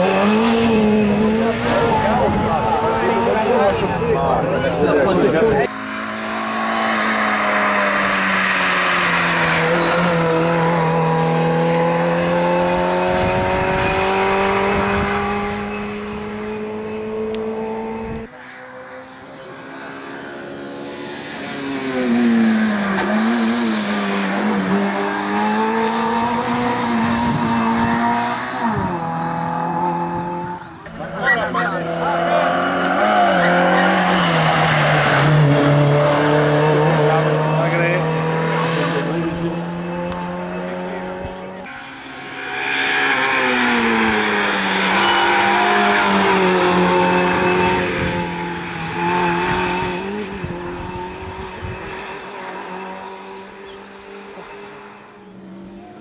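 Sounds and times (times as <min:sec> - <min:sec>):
car engine revving hard: 0:00.0 - 0:18.3, 0:18.9 - 0:55.7.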